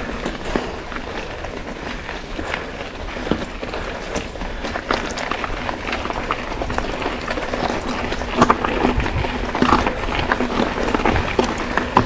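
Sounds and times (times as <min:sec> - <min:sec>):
bike rattling and knocking: 0:00.0 - 0:12.0
bike tyres on dirt trail: 0:00.0 - 0:12.0
wind rumble on microphone: 0:00.0 - 0:12.0.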